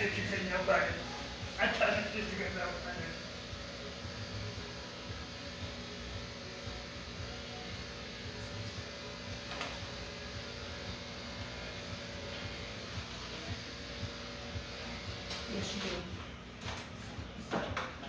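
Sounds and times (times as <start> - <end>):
electric fan humming: 0.0 - 18.0.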